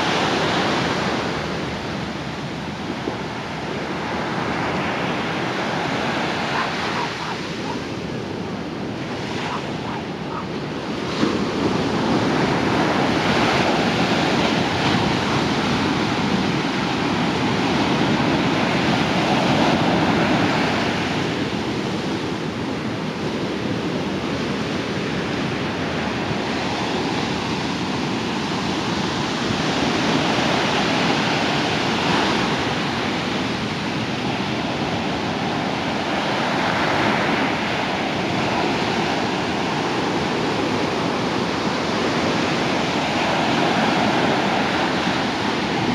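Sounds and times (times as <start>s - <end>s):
waves breaking on shore: 0.0s - 45.9s.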